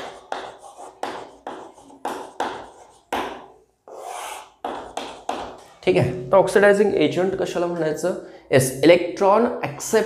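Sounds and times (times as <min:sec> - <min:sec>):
chalk scraping on chalkboard: 0:00.0 - 0:05.8.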